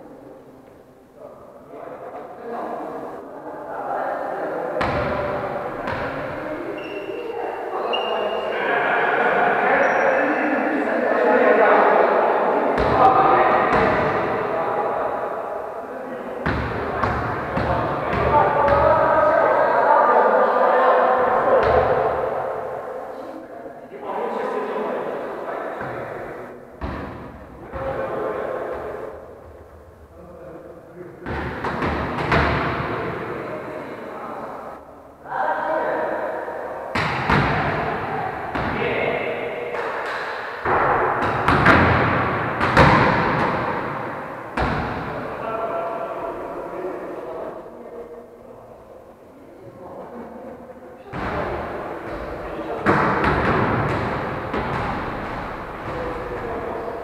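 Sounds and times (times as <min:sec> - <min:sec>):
indistinct voices in echoing hall: 0:00.0 - 0:57.0
volleyball strikes echoing: 0:04.8 - 0:06.9, 0:12.7 - 0:14.8, 0:16.4 - 0:19.1, 0:21.2 - 0:22.9, 0:25.8 - 0:29.2, 0:31.2 - 0:33.4, 0:36.9 - 0:45.4, 0:51.0 - 0:57.0.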